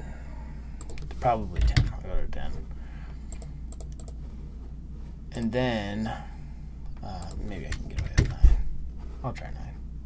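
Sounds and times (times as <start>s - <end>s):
steady low hum: 0.0s - 10.0s
keyboard and mouse clicks: 3.3s - 4.2s.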